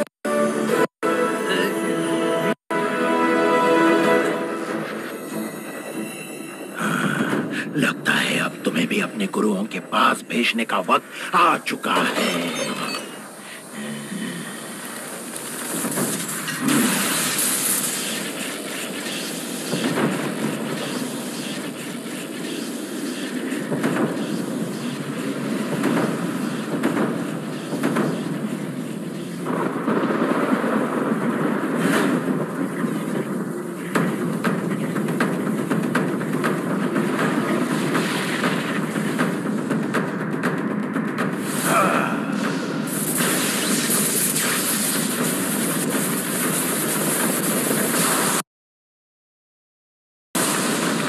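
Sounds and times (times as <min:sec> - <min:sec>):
rushing rumbling blast: 0:14.2 - 0:48.4
sharp cracks and bangs: 0:14.8 - 0:48.4, 0:50.4 - 0:51.0.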